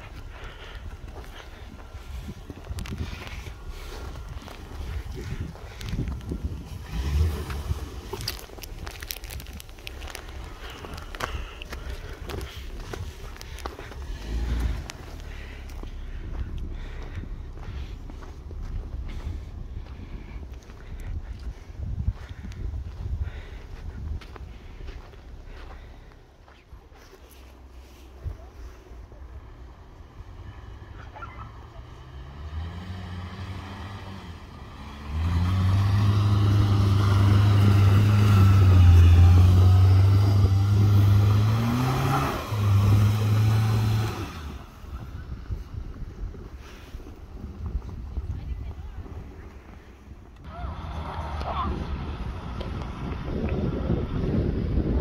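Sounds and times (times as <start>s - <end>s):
car engine running under load: 0.0s - 55.0s
low rumble with knocks: 7.4s - 25.9s.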